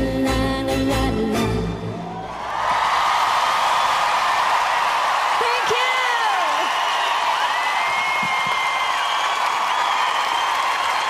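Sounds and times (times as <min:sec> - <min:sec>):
audience cheering and applauding: 0:02.0 - 0:11.0.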